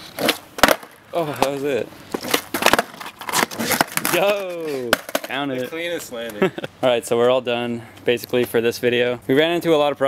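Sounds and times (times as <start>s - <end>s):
skateboard wheels rolling on asphalt: 0.0s - 6.4s.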